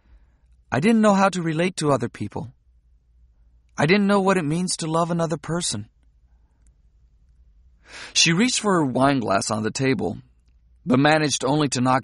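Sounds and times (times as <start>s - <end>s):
faint low hum: 0.0s - 12.0s
narrator drawing breath: 7.8s - 8.2s.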